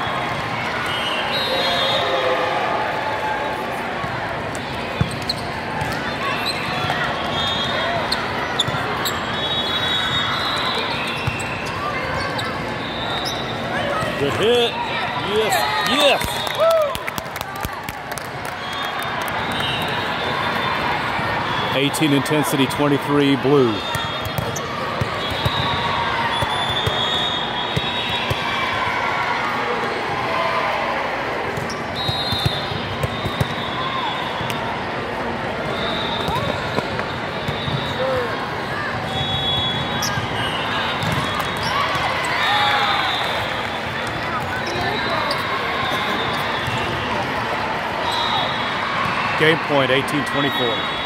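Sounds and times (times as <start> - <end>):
crowd chatter: 0.0 - 51.0
sneaker squeaks on court: 10.9 - 14.2, 39.6 - 42.1, 44.2 - 45.6.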